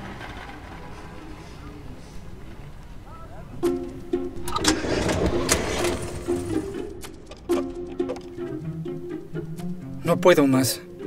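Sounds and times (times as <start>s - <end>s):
plucked string music: 3.5s - 11.0s.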